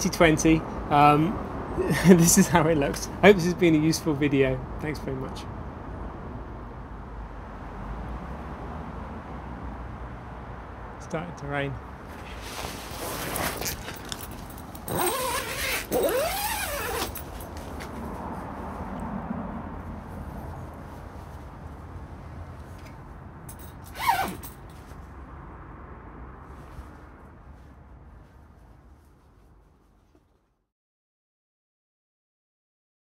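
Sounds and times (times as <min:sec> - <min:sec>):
plastic sheeting rustling: 0:12.2 - 0:14.4.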